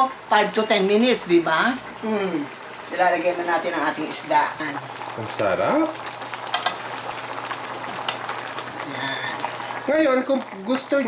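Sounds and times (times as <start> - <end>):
sauce sizzling in a wok: 0.0 - 11.0.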